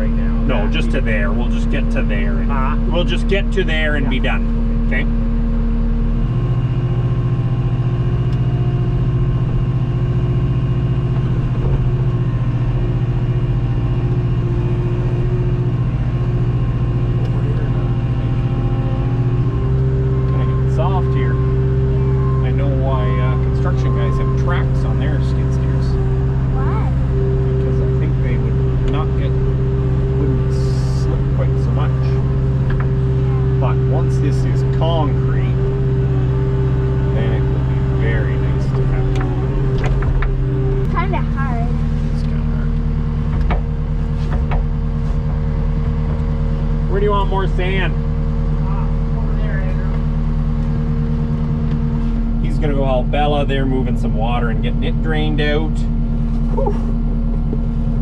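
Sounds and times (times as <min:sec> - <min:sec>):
skid steer engine running: 0:00.0 - 0:58.0.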